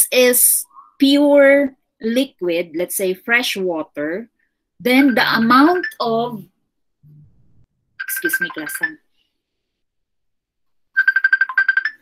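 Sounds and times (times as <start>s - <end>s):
phone ringtone high beeps: 5.0s - 6.4s, 11.0s - 12.0s.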